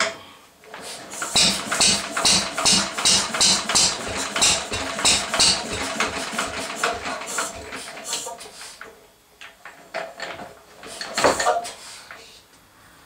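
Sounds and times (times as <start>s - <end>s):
stationary engine running roughly: 0.8s - 8.3s.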